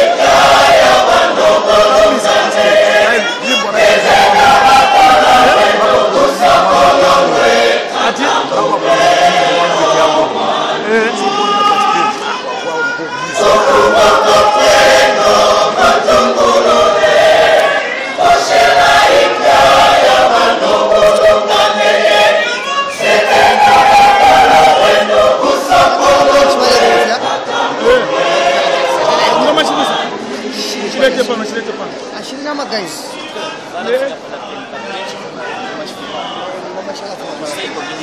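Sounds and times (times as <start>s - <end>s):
church choir singing in harmony: 0.0s - 31.3s.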